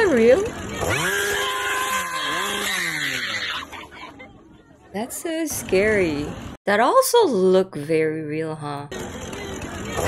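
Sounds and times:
chainsaw engine revving: 0.0 - 3.6, 9.0 - 10.0.

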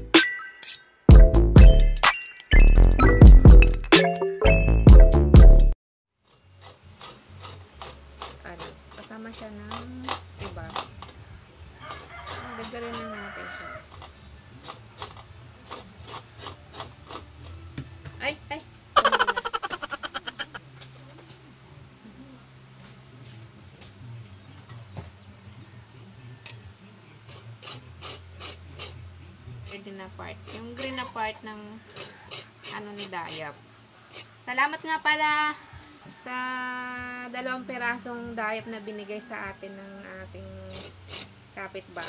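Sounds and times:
rooster crowing: 11.7 - 14.1, 19.0 - 20.6, 30.8 - 32.6, 38.6 - 40.2.

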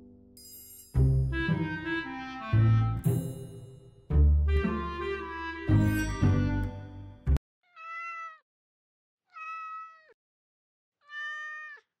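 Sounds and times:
background music: 0.0 - 7.4
cat meowing: 7.6 - 8.4, 9.3 - 10.2, 11.0 - 12.0.

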